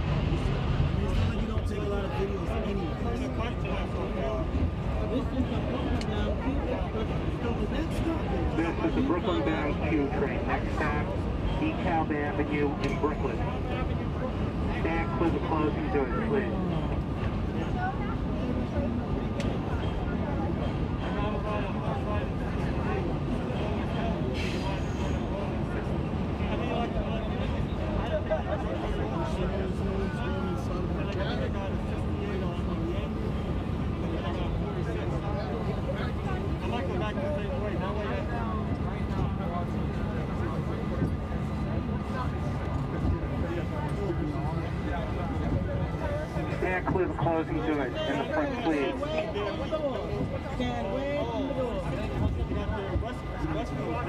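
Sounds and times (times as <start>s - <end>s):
passenger chatter: 0.0s - 54.0s
train low hum: 0.0s - 54.0s.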